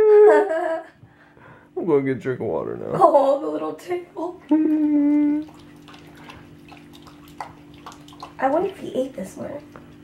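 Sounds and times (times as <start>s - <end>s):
steady low hum: 0.0s - 10.0s
dog lapping water: 4.7s - 10.0s.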